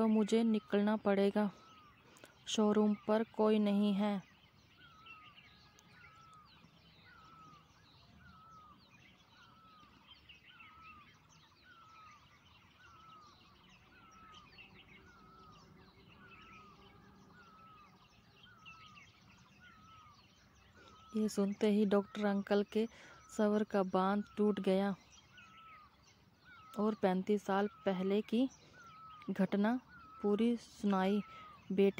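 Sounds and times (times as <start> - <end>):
higher bird chirps: 0.0 - 31.9.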